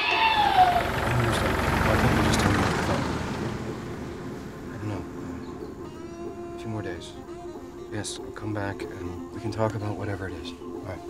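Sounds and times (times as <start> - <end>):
motor vehicle rumble: 0.0 - 7.9.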